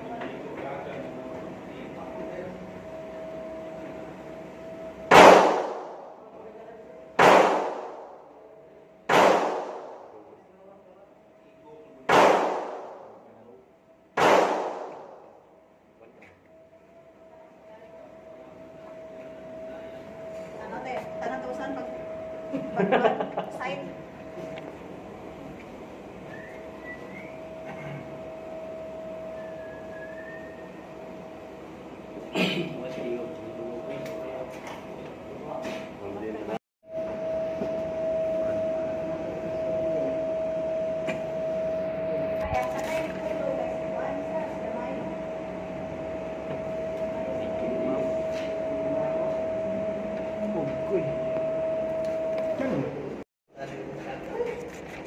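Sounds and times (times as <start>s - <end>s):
steady mid-pitched hum: 0.0s - 55.0s
handgun shots echoing: 5.1s - 6.0s, 7.2s - 8.1s, 9.1s - 10.0s, 12.1s - 13.1s, 14.2s - 15.2s.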